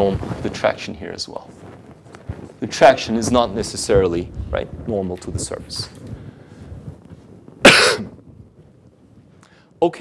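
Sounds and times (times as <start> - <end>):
man coughing: 7.6 - 8.2.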